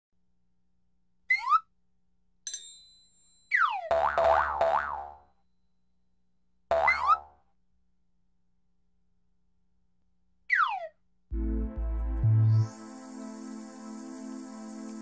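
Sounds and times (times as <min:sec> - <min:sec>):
springy boing: 0:03.6 - 0:05.2, 0:06.7 - 0:07.4.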